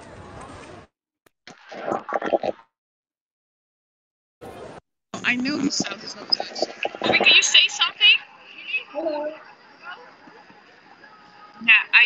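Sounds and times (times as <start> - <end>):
outdoor background noise: 0.0 - 0.9, 4.4 - 12.0.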